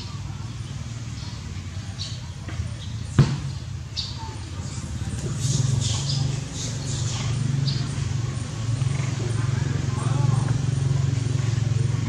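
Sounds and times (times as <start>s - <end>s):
sharp thump: 3.2s - 3.6s.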